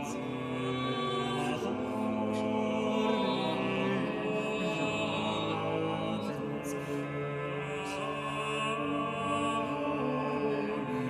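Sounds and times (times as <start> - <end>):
vocal quartet singing polyphony: 0.0 - 11.0.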